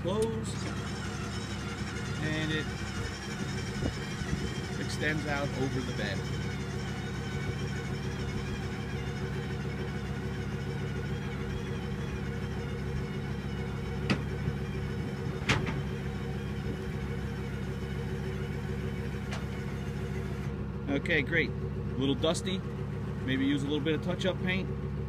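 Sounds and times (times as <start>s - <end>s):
motor drive humming: 0.0s - 20.6s.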